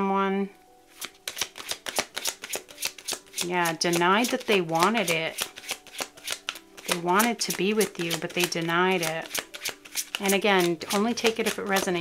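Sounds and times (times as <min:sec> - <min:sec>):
cards being shuffled: 0:00.9 - 0:12.0.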